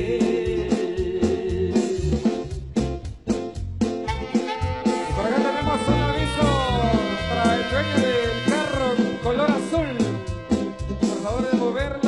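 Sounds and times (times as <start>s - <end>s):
marimba dance music: 0.0s - 12.0s.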